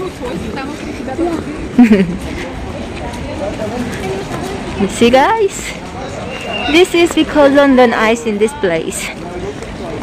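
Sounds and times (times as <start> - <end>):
outdoor background noise: 0.0 - 10.0
voices speaking: 0.0 - 10.0.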